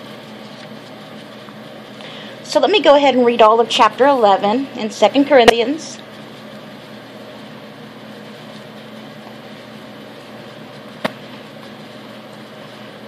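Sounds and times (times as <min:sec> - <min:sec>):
room hum and hiss: 0:00.0 - 0:13.0.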